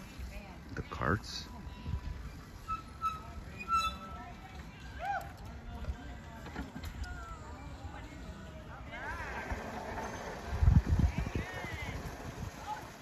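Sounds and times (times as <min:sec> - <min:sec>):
faint voices: 0:00.0 - 0:13.0.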